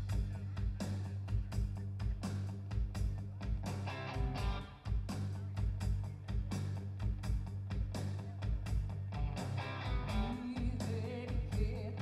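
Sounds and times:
electric bass: 0.0 - 12.0
electric guitar: 3.4 - 12.0.

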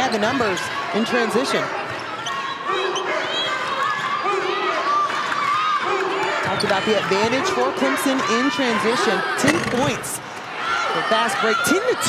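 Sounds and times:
voices in arena: 0.0 - 12.0
sneakers squeaking: 0.2 - 4.8, 6.3 - 10.2.

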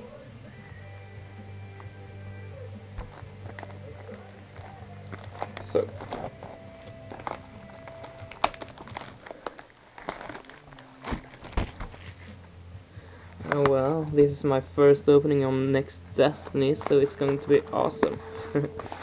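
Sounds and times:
plastic wrap crinkling: 3.0 - 12.4, 16.3 - 19.0.

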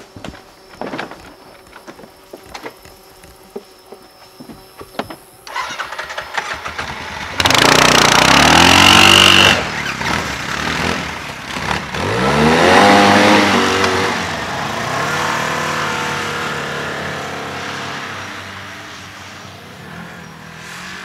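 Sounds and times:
quad bike engine revving: 5.5 - 18.3.

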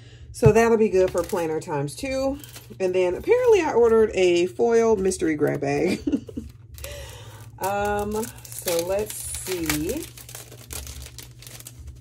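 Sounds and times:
low steady hum: 0.0 - 12.0
packaging crinkling and rustling: 0.9 - 3.9, 5.4 - 12.0.

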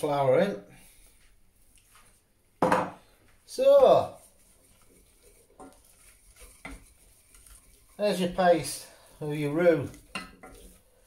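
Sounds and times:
wooden spoon stirring in a saucepan: 3.0 - 11.0
spoon scraping and knocking pan: 4.8 - 11.0.

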